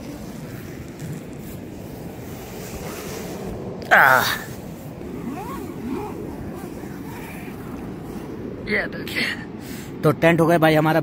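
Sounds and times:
tent zipper pulled shut: 0:00.0 - 0:03.5, 0:05.1 - 0:07.3.

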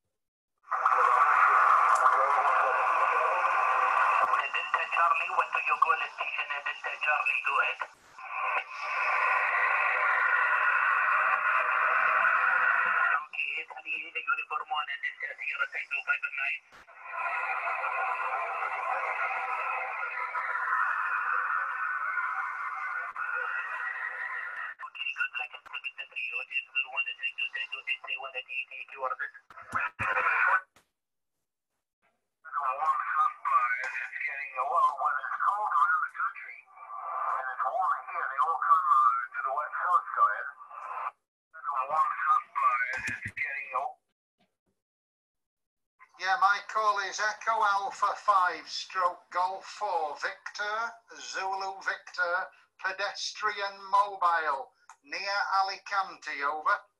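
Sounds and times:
narrow-band radio static: 0:00.7 - 0:30.8, 0:32.5 - 0:43.9
weak garbled radio voices: 0:00.7 - 0:30.8, 0:32.5 - 0:44.0, 0:46.0 - 0:56.9.

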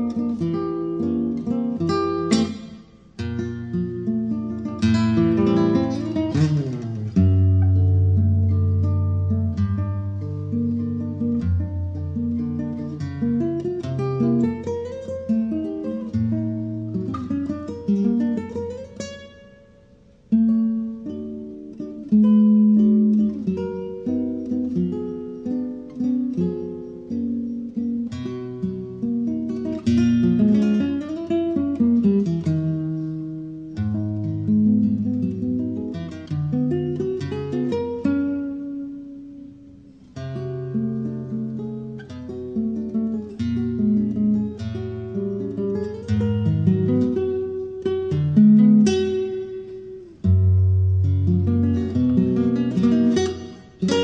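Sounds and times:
fingerpicked nylon-string guitar: 0:00.0 - 0:54.0.

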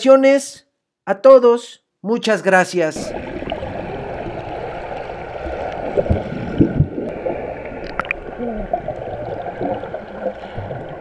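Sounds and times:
muffled underwater rushing: 0:03.0 - 0:11.0
underwater bubbling: 0:03.0 - 0:11.0.

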